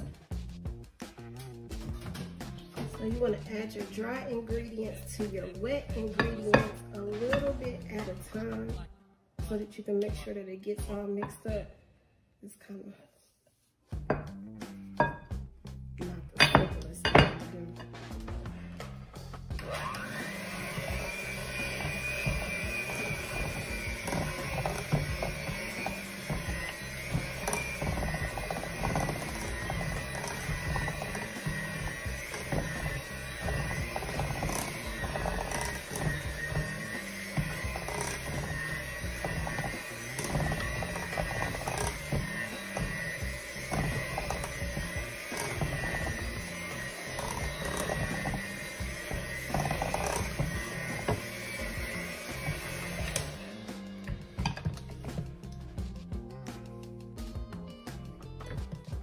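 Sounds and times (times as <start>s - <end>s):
background music: 0.0s - 11.8s, 13.9s - 59.0s
electric hand mixer whining: 2.8s - 8.8s, 19.2s - 55.6s.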